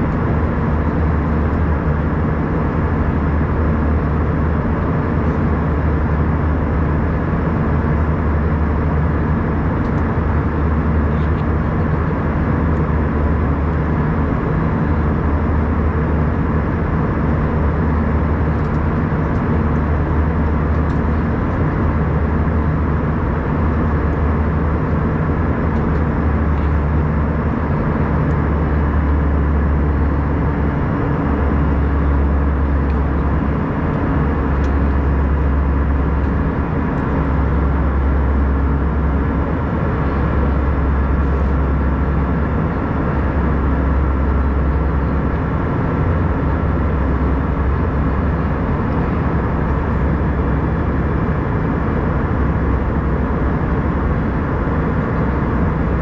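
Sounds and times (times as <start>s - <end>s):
airliner cabin engine and airflow noise: 0.0s - 56.0s.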